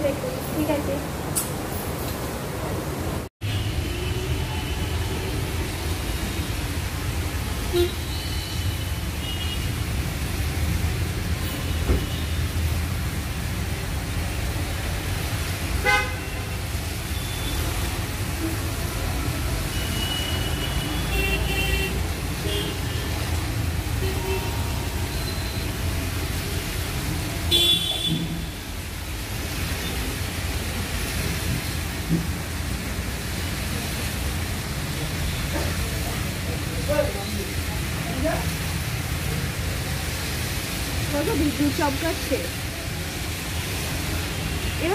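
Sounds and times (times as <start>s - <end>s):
road traffic on wet road: 0.0s - 44.9s.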